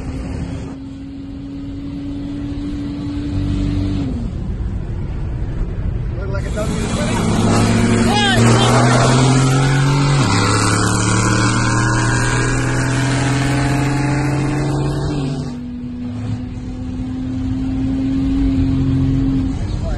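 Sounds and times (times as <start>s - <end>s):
car engine at full throttle: 0.0s - 19.9s
road noise: 0.0s - 19.9s.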